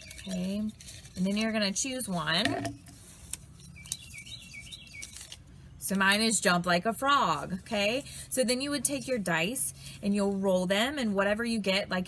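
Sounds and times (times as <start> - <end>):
songbird chirping: 3.7 - 5.3.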